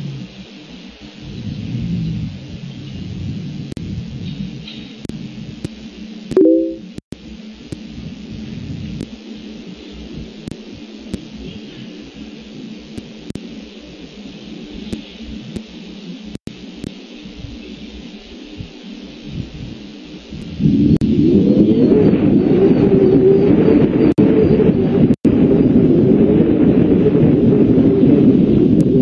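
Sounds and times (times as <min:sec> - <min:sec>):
loud steady low rumble: 0:01.1 - 0:22.3.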